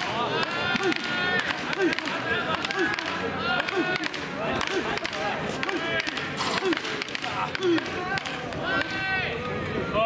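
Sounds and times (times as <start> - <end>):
baseball bat cracking ball: 0.0 - 9.0.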